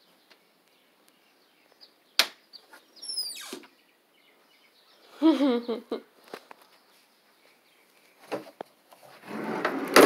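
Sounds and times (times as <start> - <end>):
wooden drawer sliding: 9.2 - 10.0.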